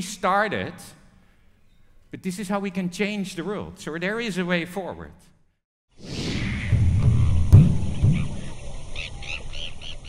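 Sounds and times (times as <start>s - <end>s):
low rumble: 6.2s - 9.0s
high chirping animal calls: 8.2s - 10.0s.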